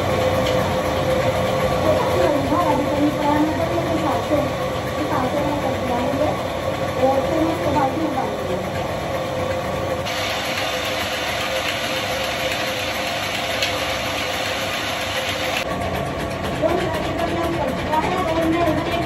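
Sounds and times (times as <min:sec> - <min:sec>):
flour mill grinding grain: 0:00.0 - 0:19.0.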